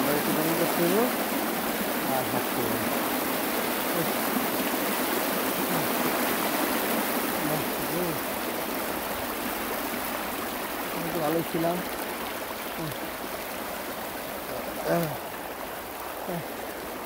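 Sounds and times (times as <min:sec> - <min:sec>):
water rushing: 0:00.0 - 0:17.0.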